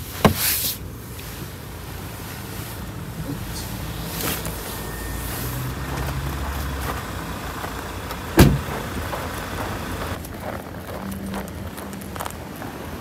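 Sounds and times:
car door shutting thud: 0:08.3 - 0:08.8.

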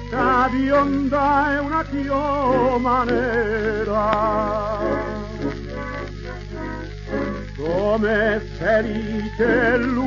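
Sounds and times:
person singing: 0:00.0 - 0:05.6, 0:07.6 - 0:10.0
tango band playing: 0:00.0 - 0:10.0.

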